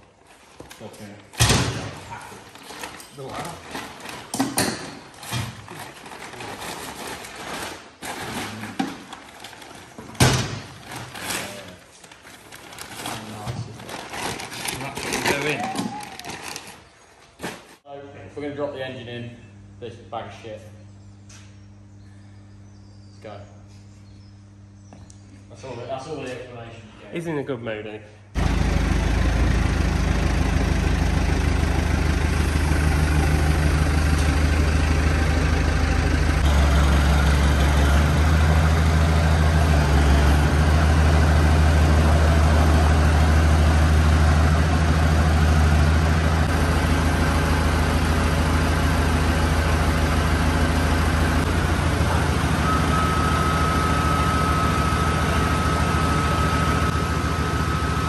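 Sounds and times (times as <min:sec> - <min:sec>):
diesel engine running under load: 0:28.3 - 0:58.0.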